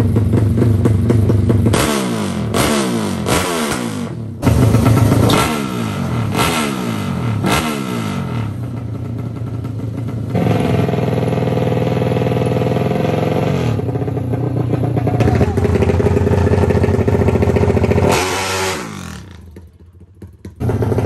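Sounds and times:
motorcycle engine idling high: 0.0 - 21.0
motorcycle engine revving: 0.0 - 21.0.

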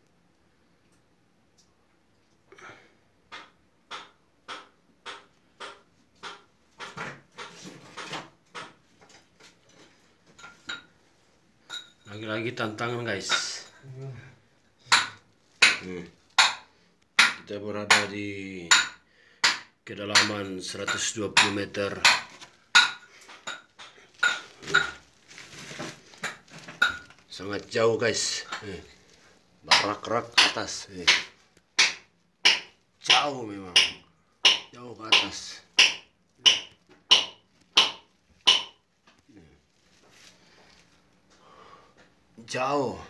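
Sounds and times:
hammer striking chisel on rock: 14.9 - 16.6, 17.2 - 18.1, 18.7 - 23.6, 29.7 - 33.2, 33.8 - 38.8.

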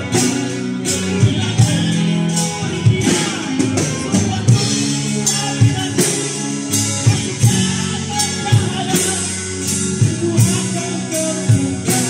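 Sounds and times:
acoustic guitar: 0.0 - 12.0
bass guitar: 0.0 - 12.0
electric guitar: 0.0 - 12.0.

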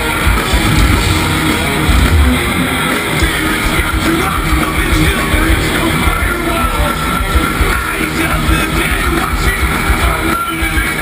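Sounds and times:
distorted electric guitars: 0.0 - 11.0
heavy drums: 0.0 - 11.0.

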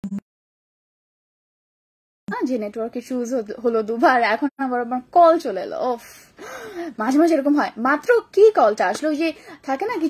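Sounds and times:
woman speaking: 2.3 - 10.0
breathy intake of breath: 6.2 - 6.9.

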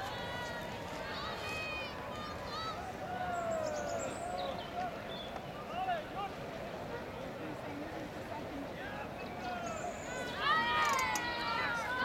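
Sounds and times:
steady outdoor hiss: 0.0 - 12.0
distant voices shouting: 9.4 - 12.0.

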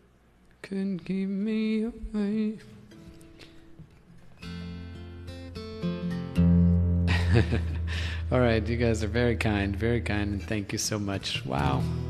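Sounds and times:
acoustic guitar picked: 0.7 - 12.0.

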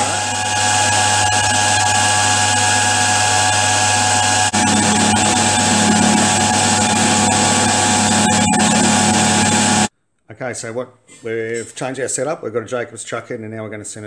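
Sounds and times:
cutter cutting into metal: 0.0 - 9.9
milling machine hum and whine: 0.0 - 9.9.

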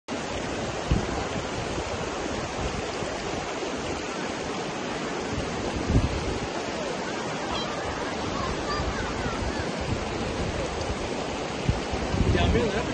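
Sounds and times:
river rushing over stones: 0.1 - 12.9
wind on microphone: 0.1 - 12.9
low thump: 0.8 - 1.3.

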